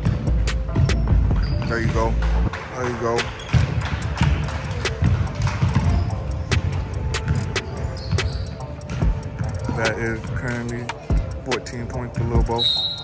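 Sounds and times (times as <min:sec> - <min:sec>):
shoe squeaks: 0:00.7 - 0:02.1, 0:03.3 - 0:03.8, 0:05.6 - 0:06.5, 0:07.2 - 0:10.5, 0:12.4 - 0:13.0.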